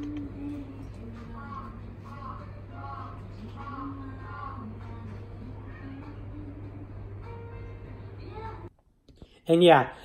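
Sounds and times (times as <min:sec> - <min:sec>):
soft background music: 0:00.0 - 0:08.7.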